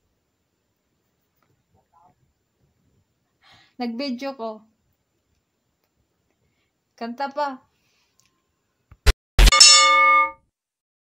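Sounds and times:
bell-like ding: 0:09.4 - 0:10.4.

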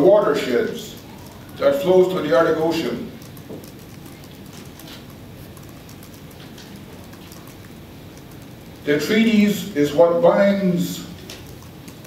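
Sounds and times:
large room background noise: 0:00.0 - 0:12.0.

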